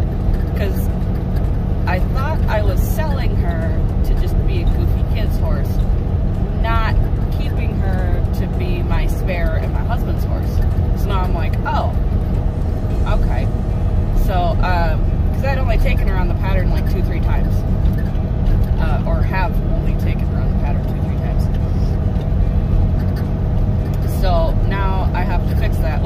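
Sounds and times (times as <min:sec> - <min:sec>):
vehicle engine and road rumble: 0:00.0 - 0:26.0
person talking: 0:06.5 - 0:12.0, 0:13.0 - 0:13.5, 0:14.2 - 0:17.6, 0:18.7 - 0:21.9, 0:24.0 - 0:26.0.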